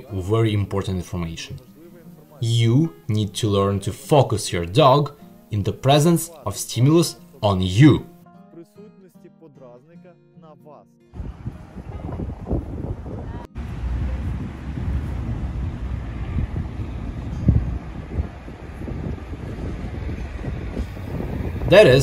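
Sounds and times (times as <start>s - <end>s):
wind buffeting microphone: 11.2s - 22.0s.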